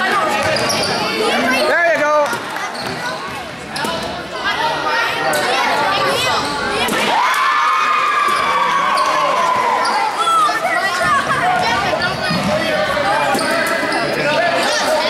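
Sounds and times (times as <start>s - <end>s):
shoe squeaks and knocks: 0.4s - 1.2s, 2.7s - 4.1s, 13.3s - 14.2s.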